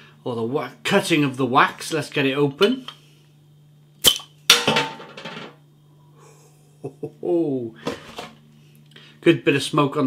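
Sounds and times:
bottle cap pop and gas hiss: 0:04.0 - 0:04.3.

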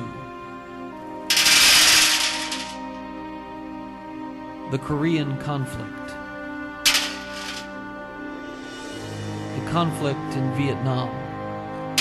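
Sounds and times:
soft background music: 0:00.0 - 0:12.0
metal bbs rattling in tin can: 0:01.3 - 0:02.8, 0:06.9 - 0:07.7.

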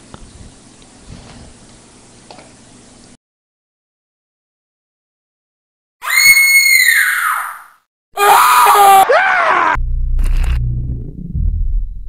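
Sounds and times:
high-pitched human scream: 0:06.0 - 0:09.8
lower-pitched scream falling in pitch: 0:06.0 - 0:09.8.

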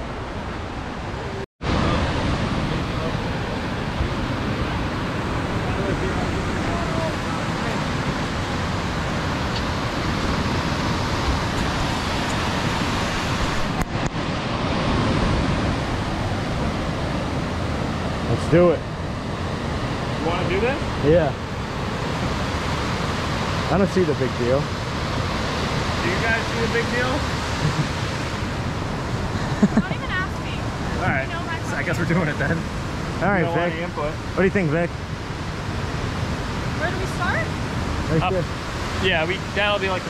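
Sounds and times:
river rapids rushing over rocks: 0:01.7 - 0:18.3.

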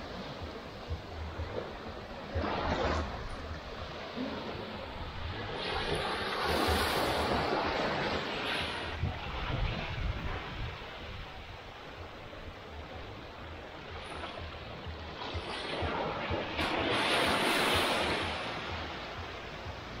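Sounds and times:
small waves breaking on shore: 0:00.0 - 0:20.0
wind buffeting microphone: 0:00.0 - 0:20.0.

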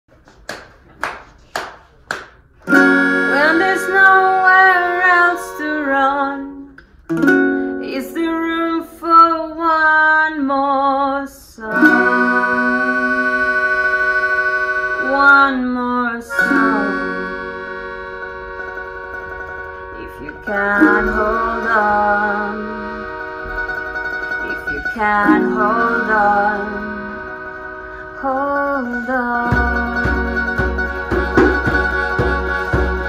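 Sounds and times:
melodica chords: 0:02.6 - 0:09.2, 0:11.7 - 0:33.0.

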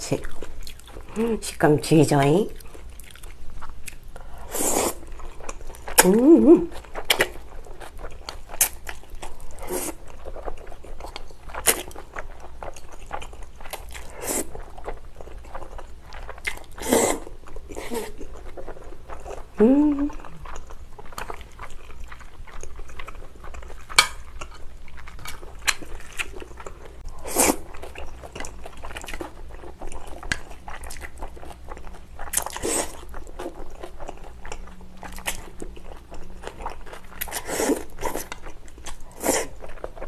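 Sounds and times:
chewing and crunching food: 0:00.0 - 0:40.0.

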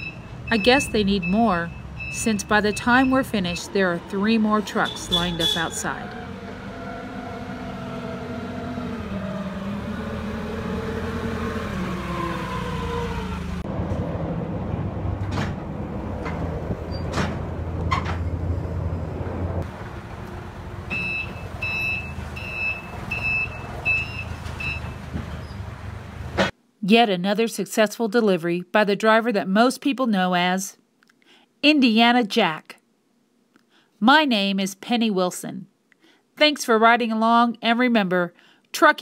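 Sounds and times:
reversing alarm beeps: 0:00.0 - 0:03.8, 0:20.9 - 0:25.0
forklift engine running: 0:00.0 - 0:26.4.

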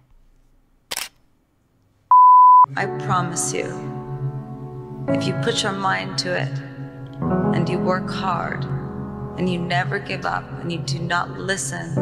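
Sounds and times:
loud electronic beep: 0:02.1 - 0:02.7.

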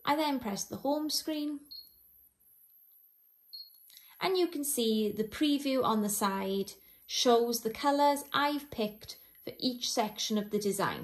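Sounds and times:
short high-pitched beep: 0:03.5 - 0:03.8.

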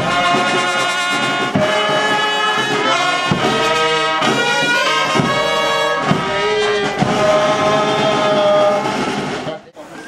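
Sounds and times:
brass-toned backing music: 0:00.0 - 0:09.7.

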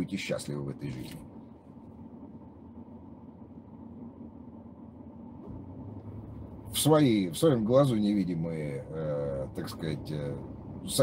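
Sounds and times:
low hum in car cabin: 0:00.0 - 0:11.0.

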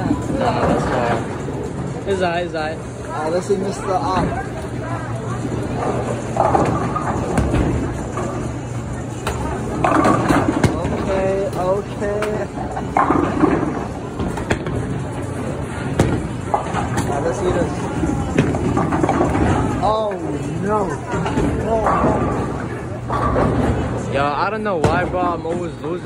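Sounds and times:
bowling ball rolling: 0:00.0 - 0:02.0, 0:02.7 - 0:25.6
background chatter: 0:00.0 - 0:26.0.

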